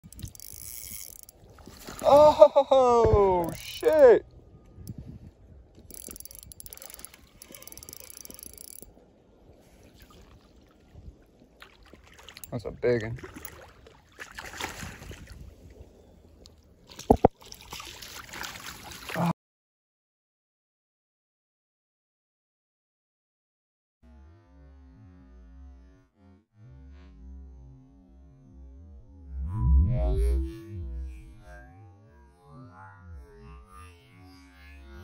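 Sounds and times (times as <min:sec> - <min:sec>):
fishing reel clicking: 0:00.0 - 0:01.5, 0:03.4 - 0:04.1, 0:05.8 - 0:09.0
fish splashing in water: 0:13.2 - 0:15.3, 0:16.9 - 0:19.2.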